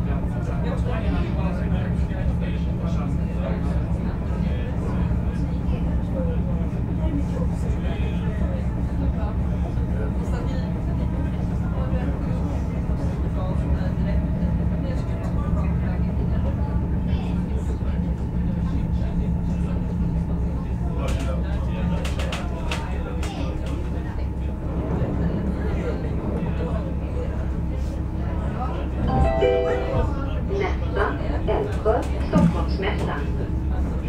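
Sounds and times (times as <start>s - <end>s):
murmur of passengers' voices: 0.0s - 34.0s
train rumbling: 21.9s - 28.2s.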